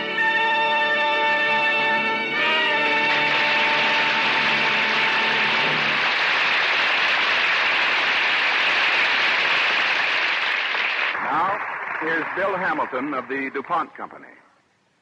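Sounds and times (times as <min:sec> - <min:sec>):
audience applause: 0:02.6 - 0:14.0.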